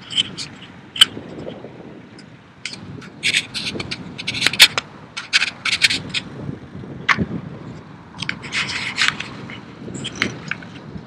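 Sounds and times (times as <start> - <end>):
scraping and rubbing noises: 0.0 - 1.6, 2.7 - 6.3, 8.2 - 11.0.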